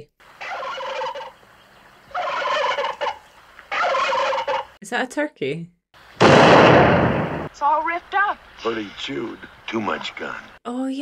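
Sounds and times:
turkey gobbling: 0.3 - 4.8.

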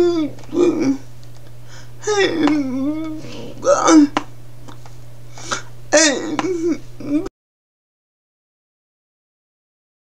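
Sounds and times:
woman's wavering vocal sound: 0.0 - 1.1, 2.0 - 4.2, 6.0 - 7.3.

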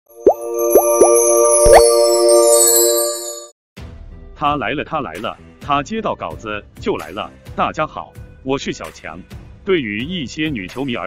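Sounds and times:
held bright chord: 0.1 - 3.5.

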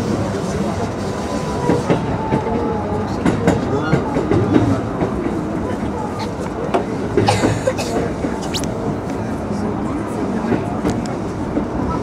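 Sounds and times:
train rumbling inside carriage: 0.0 - 12.0.

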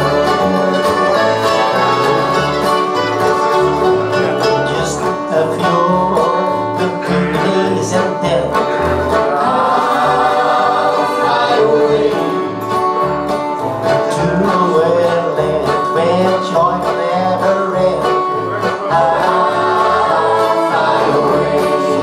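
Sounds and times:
accordion: 0.0 - 22.0
mandolin: 0.0 - 22.0
strummed acoustic guitars: 0.0 - 22.0
person singing: 0.1 - 3.0, 3.7 - 12.6, 13.9 - 22.0.

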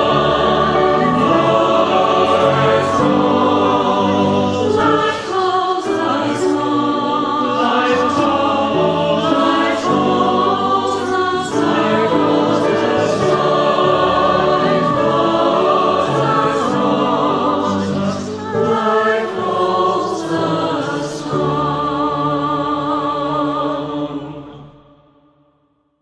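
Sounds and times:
piano accompaniment: 0.0 - 23.8
mixed choir singing: 0.0 - 25.2.

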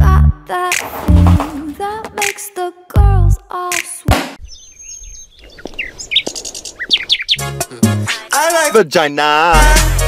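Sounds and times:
bird chirping: 4.4 - 7.7
music or voice: 7.6 - 10.0.

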